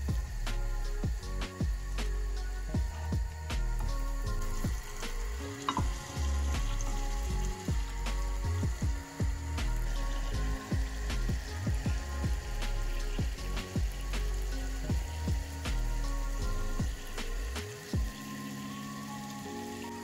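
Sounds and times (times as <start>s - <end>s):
chicken sizzling in hot oil: 0.0s - 20.0s
oil crackling and popping: 0.0s - 20.0s.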